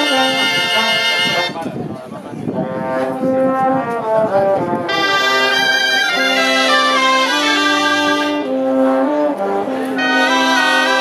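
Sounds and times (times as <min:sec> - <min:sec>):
reed and brass band playing: 0:00.0 - 0:11.0.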